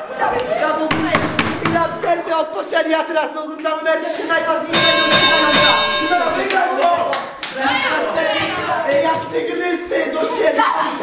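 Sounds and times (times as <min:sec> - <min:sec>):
excited voices: 0:05.8 - 0:11.0.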